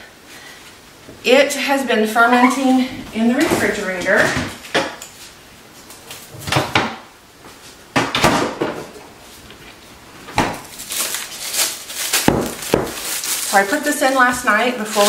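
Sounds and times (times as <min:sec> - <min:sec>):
knocks and clatters in fridge: 0:07.9 - 0:08.9, 0:10.3 - 0:10.7, 0:12.3 - 0:13.0.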